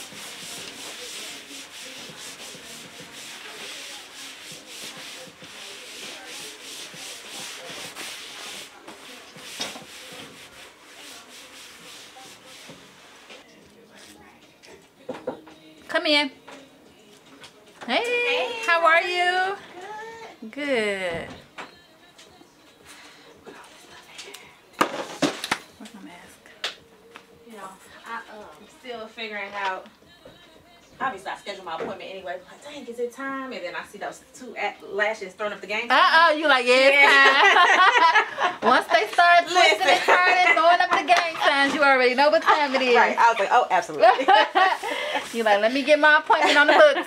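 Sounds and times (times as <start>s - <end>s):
cloth rubbing padded surface: 0.0s - 13.4s.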